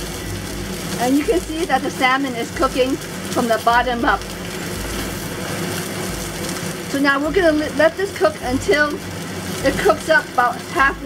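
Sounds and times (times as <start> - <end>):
fish sizzling in oil: 0.0 - 11.0.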